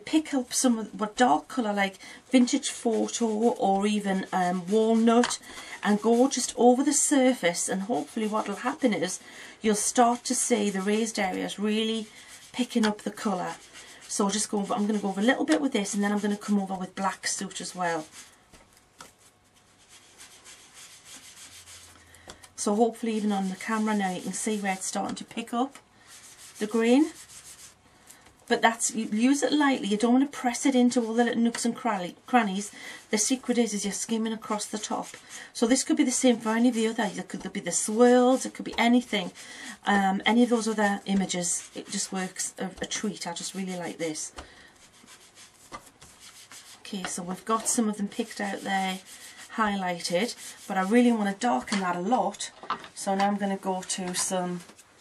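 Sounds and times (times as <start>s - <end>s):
foam applicator rubbing on cardstock: 40.4s - 51.0s.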